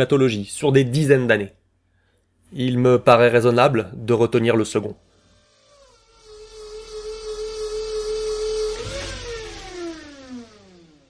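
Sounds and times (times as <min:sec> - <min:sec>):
steady hum: 0:03.7 - 0:11.0
swoosh falling in pitch: 0:05.5 - 0:11.0.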